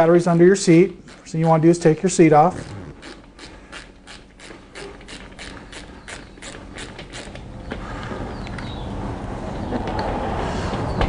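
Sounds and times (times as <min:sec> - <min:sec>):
ratchet wrench clicking: 0:03.0 - 0:07.4.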